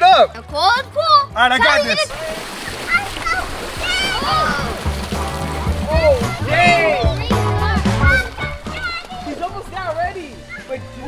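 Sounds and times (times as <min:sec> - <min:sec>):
background music: 0:00.0 - 0:11.0
children calling: 0:00.6 - 0:11.0
swimmer splashing water: 0:00.6 - 0:11.0.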